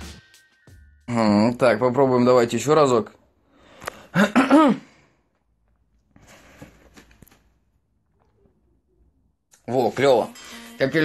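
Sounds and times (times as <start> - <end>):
man clearing throat: 4.1 - 4.9
faint rustling: 5.6 - 8.7.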